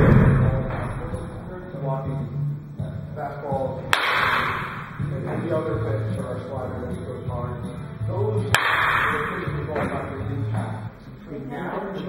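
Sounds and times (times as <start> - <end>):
heavy thud: 0.0 - 1.4
low voices: 0.0 - 12.0
bat cracking a ball: 3.9 - 5.0, 8.5 - 10.1.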